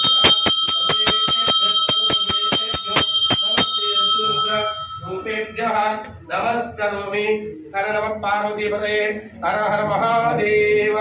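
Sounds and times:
temple bell ringing rapidly: 0:00.0 - 0:06.0
man chanting: 0:00.0 - 0:11.0.

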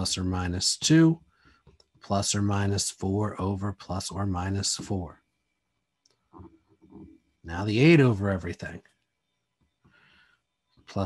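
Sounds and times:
person speaking: 0:00.0 - 0:01.2, 0:02.1 - 0:05.1, 0:06.4 - 0:08.8.

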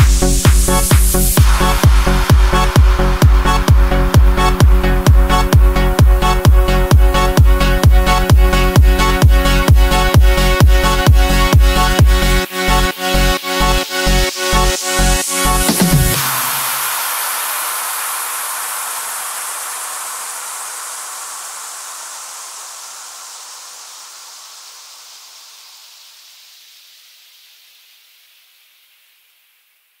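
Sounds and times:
electronic dance beat: 0:00.0 - 0:17.9
hissing white noise wash: 0:16.1 - 0:29.1.

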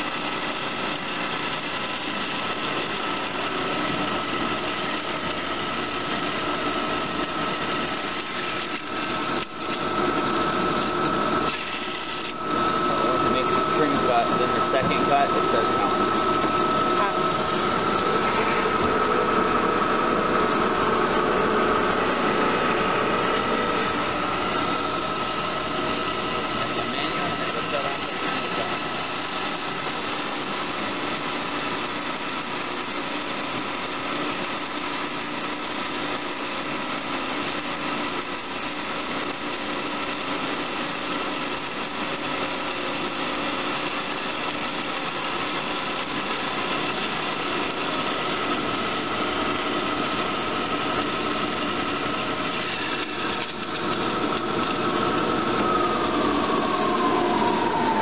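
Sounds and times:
band saw running: 0:00.0 - 0:58.0.

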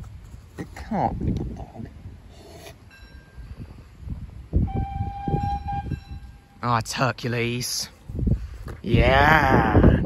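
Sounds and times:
steam locomotive whistle: 0:04.6 - 0:06.5.

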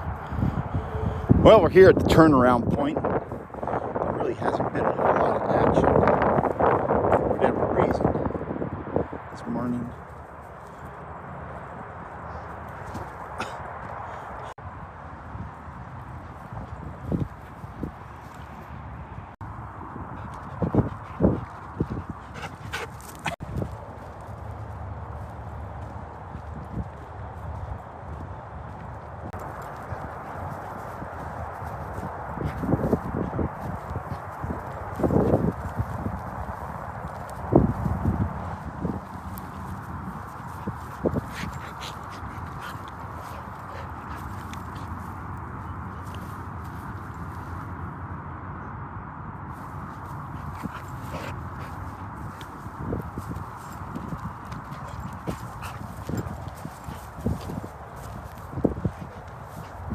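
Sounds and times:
footsteps of person and dog: 0:20.1 - 0:47.6, 0:49.6 - 0:59.9.

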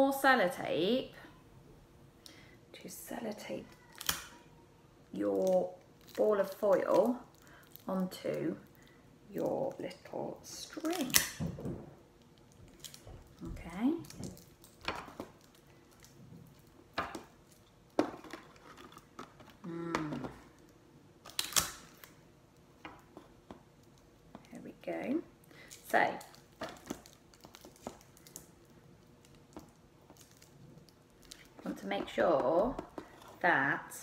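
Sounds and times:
sticky tape tearing: 0:21.2 - 0:22.2
foil crinkling: 0:25.5 - 0:33.4.

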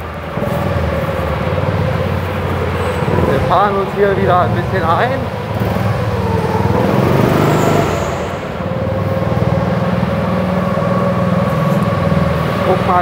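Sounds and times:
go-kart engine running: 0:00.0 - 0:13.0.

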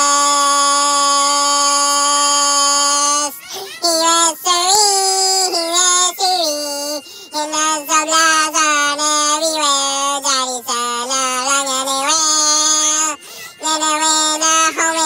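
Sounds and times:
child-like voice singing: 0:00.0 - 0:15.0.

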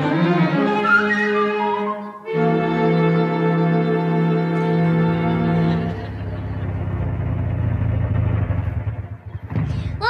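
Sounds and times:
low rumbling vehicle engine: 0:04.0 - 0:10.0.

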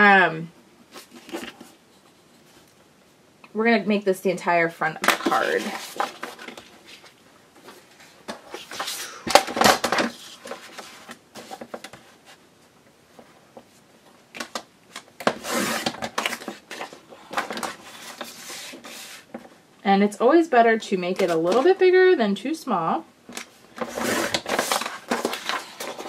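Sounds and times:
paper rustling: 0:05.2 - 0:12.4, 0:14.4 - 0:19.5, 0:23.3 - 0:26.0.

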